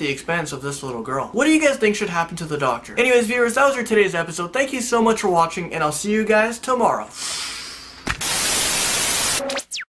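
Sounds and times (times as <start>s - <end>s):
hissing white-noise static: 5.6s - 9.4s.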